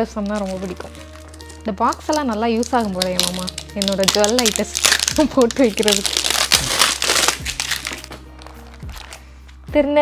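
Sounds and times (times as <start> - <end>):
plastic wrap crinkling: 0.0 - 9.3
soft background music: 0.0 - 10.0.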